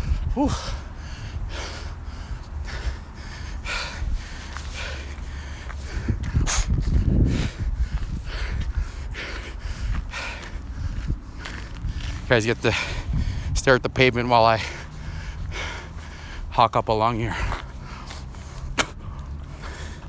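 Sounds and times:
man breathing hard and gasping: 0:00.0 - 0:13.7, 0:14.3 - 0:16.6, 0:17.2 - 0:20.0
low microphone rumble: 0:00.0 - 0:16.5
footsteps: 0:09.4 - 0:12.4.

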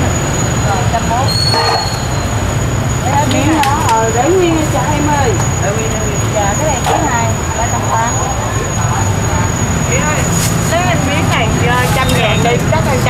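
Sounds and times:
background voices talking: 0:00.0 - 0:13.0
low traffic rumble: 0:00.0 - 0:13.0.

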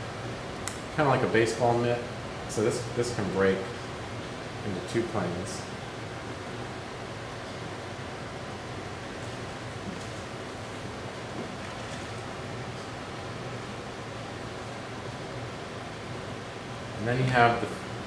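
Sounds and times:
room hiss: 0:00.0 - 0:18.0.

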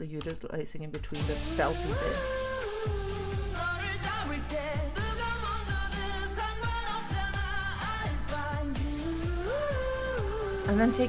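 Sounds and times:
pop-rock band song: 0:01.4 - 0:10.7
man singing: 0:01.8 - 0:11.0.

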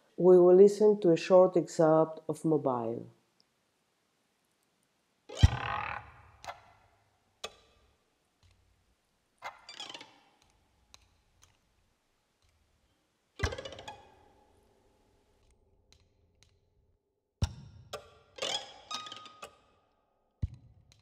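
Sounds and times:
harp plucked attacks: 0:05.3 - 0:06.6.

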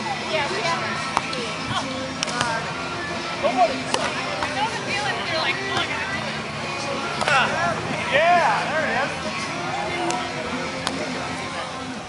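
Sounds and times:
background music: 0:00.0 - 0:12.0
volleyball being hit: 0:02.2 - 0:02.6, 0:03.8 - 0:04.6, 0:05.7 - 0:06.0, 0:07.1 - 0:07.5, 0:10.8 - 0:11.1.

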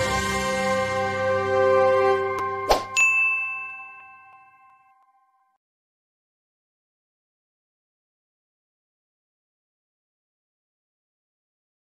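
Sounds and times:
held chord of theme music: 0:00.0 - 0:04.2
short swoosh: 0:02.7 - 0:03.0
bright bell ding: 0:02.9 - 0:05.6.

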